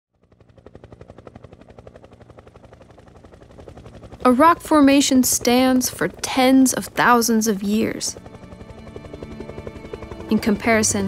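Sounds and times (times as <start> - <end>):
helicopter rotor thudding: 0.2 - 11.0
low engine drone: 0.2 - 11.0.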